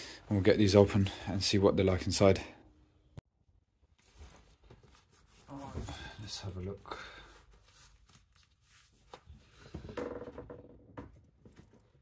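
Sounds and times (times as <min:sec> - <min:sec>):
gloves rustling on hands: 0:03.9 - 0:09.7.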